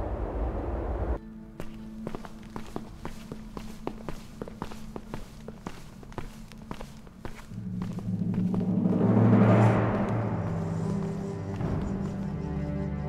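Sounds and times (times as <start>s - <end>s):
footsteps on stone floor: 1.5s - 12.7s
low music drone: 7.5s - 13.0s.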